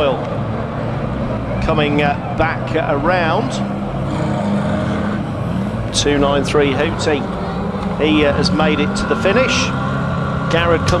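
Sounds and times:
racing van engines droning: 0:00.0 - 0:11.0.

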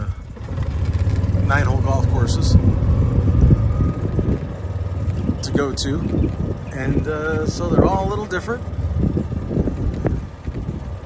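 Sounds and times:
vehicle motor pulling away: 0:00.0 - 0:11.0.

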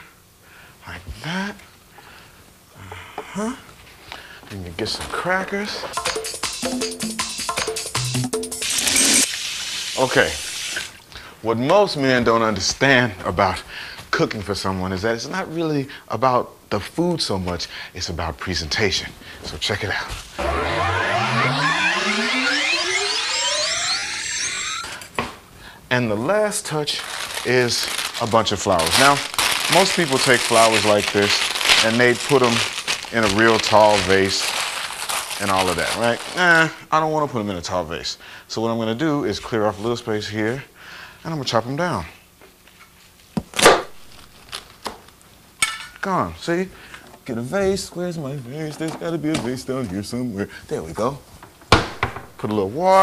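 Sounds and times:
electronic rising whine: 0:20.2 - 0:25.1.

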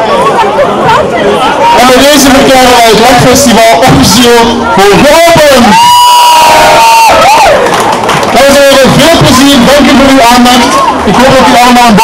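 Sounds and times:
crowd cheering and shouting: 0:00.0 - 0:12.0
person shouting a long high note: 0:05.6 - 0:07.5.

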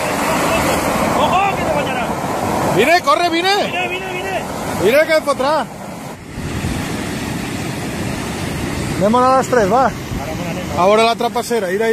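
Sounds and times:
flood water rushing: 0:00.0 - 0:11.9.

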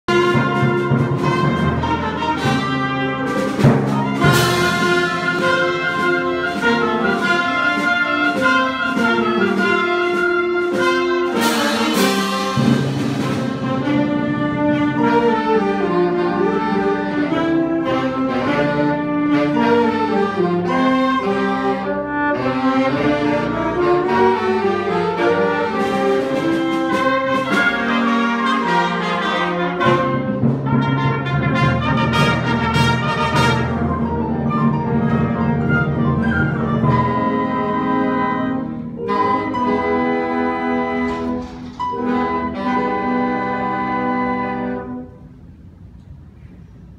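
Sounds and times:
band playing live: 0:00.1 - 0:45.8.

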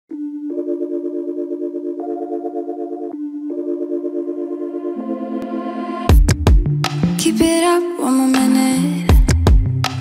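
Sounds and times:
pulsing synthesizer chords: 0:00.1 - 0:07.2.

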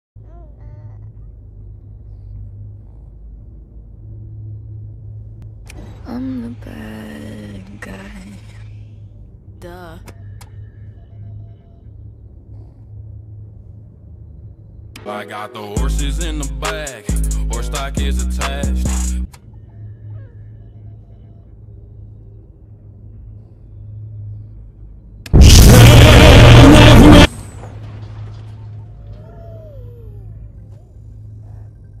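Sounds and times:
spaceship engine drone: 0:01.1 - 0:32.0
music: 0:10.0 - 0:12.0, 0:15.0 - 0:21.8, 0:25.4 - 0:27.3.

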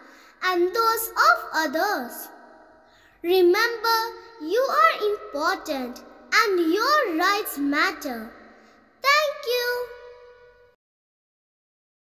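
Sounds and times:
child saying thank you: 0:00.4 - 0:02.2, 0:09.0 - 0:10.0.

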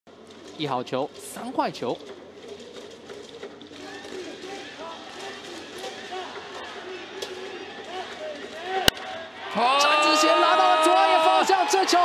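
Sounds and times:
ballpark background haze: 0:00.1 - 0:12.0.

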